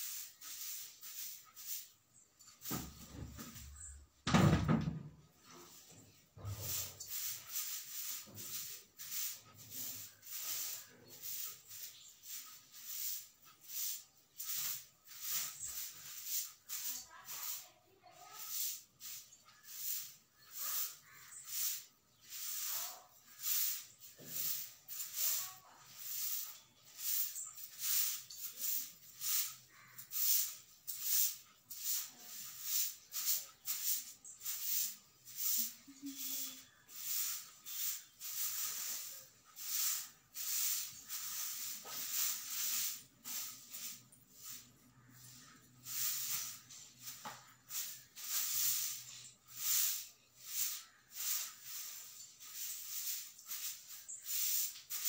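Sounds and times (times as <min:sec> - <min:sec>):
broom sweeping a floor: 0:00.0 - 0:55.0.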